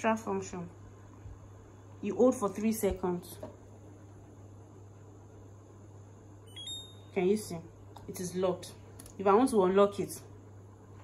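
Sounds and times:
short electronic beep: 0:06.5 - 0:07.2.

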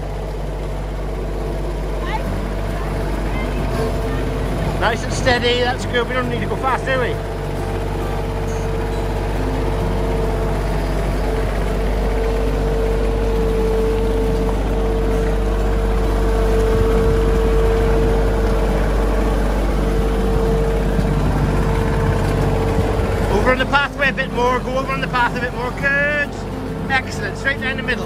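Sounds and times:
high whine: 0:00.0 - 0:28.0
tractor engine running: 0:00.0 - 0:28.0.

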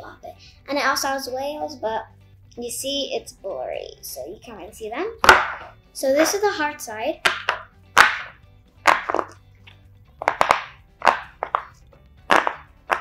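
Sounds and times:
fidget toy bubbles popping: 0:07.2 - 0:09.4, 0:10.2 - 0:13.0.

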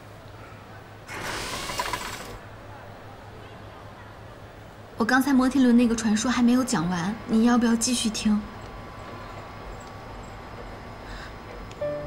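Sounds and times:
mechanical rattling whir: 0:01.1 - 0:02.4.

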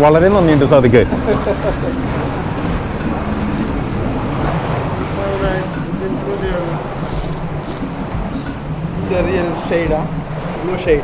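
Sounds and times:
boat motor running: 0:00.0 - 0:11.0
faint voices: 0:00.0 - 0:11.0
water around hull: 0:00.0 - 0:11.0.

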